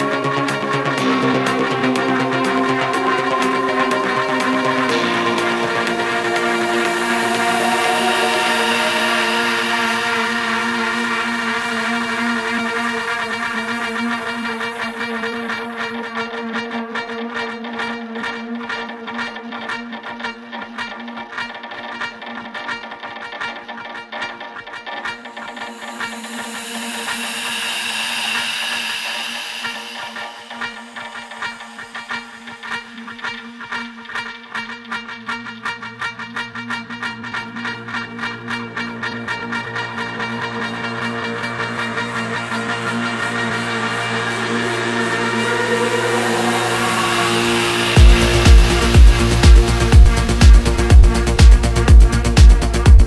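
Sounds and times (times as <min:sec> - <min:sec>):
electronic synth drone: 0:00.0 - 0:20.2, 0:24.5 - 0:53.0
short plucked synth notes: 0:01.0 - 0:12.4, 0:43.7 - 0:53.0.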